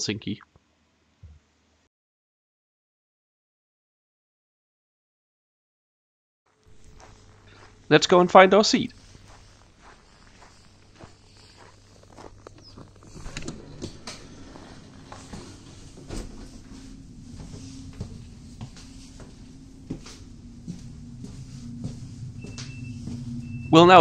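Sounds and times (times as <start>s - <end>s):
footsteps on snow: 6.5s - 23.7s
low steady carriage hum: 6.6s - 24.0s.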